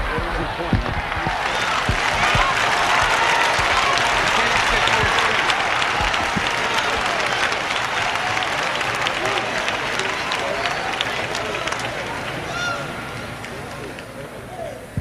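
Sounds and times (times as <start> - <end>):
crowd applauding: 0.0 - 14.7
voices in crowd: 0.0 - 15.0.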